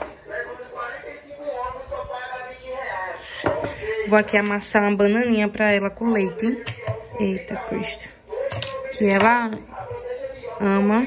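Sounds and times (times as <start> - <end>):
woman speaking: 0.7 - 8.2, 8.8 - 11.0.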